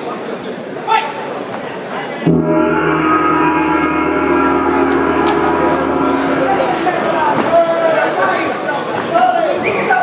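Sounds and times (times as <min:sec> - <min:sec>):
sustained metallic signal tone: 0:02.3 - 0:08.3.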